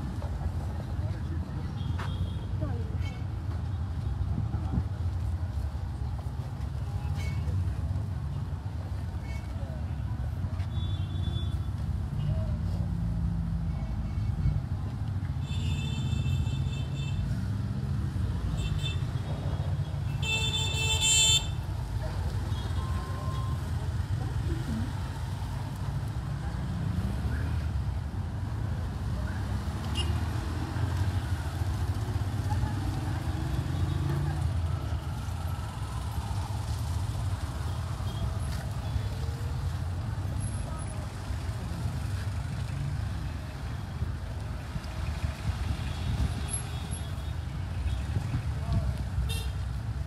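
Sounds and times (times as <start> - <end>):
crowd talking: 21.9 - 27.6.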